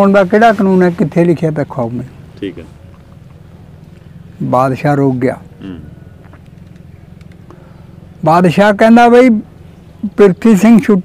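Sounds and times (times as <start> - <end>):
low background hum: 0.0 - 11.0
faint ticks: 6.2 - 7.7.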